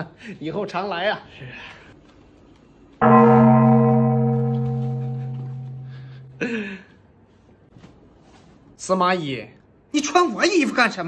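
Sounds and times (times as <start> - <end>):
deep bell strike: 3.0 - 6.5.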